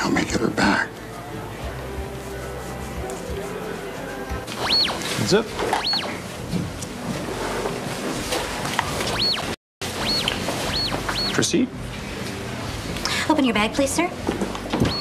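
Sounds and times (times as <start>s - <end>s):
background music: 0.0s - 6.3s
metal detector electronic whoops: 4.5s - 5.1s, 5.8s - 6.2s, 9.1s - 11.4s.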